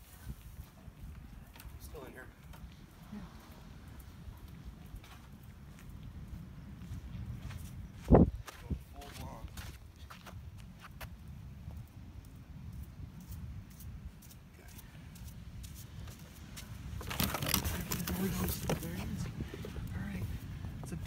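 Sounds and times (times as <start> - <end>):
footsteps on dirt and sand: 4.1 - 20.6
rustling handling noise: 16.9 - 19.8.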